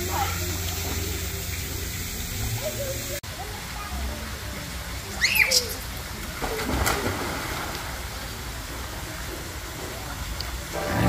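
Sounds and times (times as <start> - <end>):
outdoor background noise: 0.0 - 11.0
children squealing: 5.1 - 5.9
splash into pool: 5.1 - 8.3.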